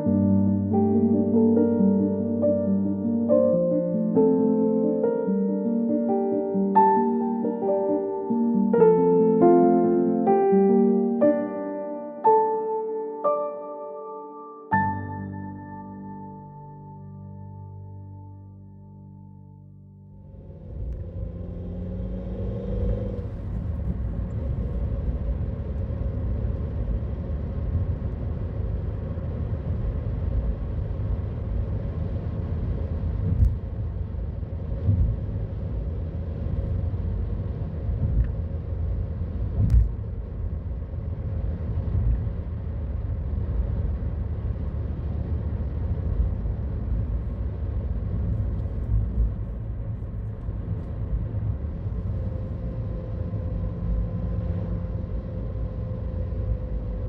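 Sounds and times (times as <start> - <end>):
car engine and tyre rumble: 20.0 - 57.0.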